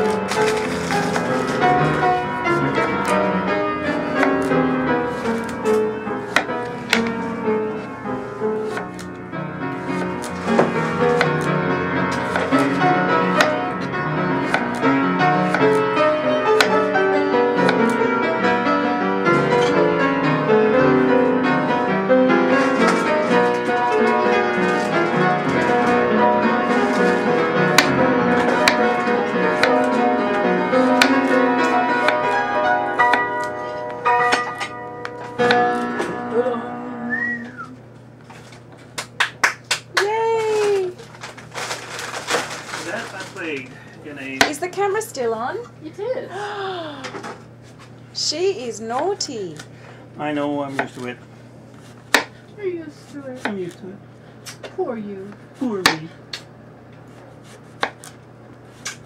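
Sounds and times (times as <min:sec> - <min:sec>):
classical piano music: 0:00.0 - 0:37.9.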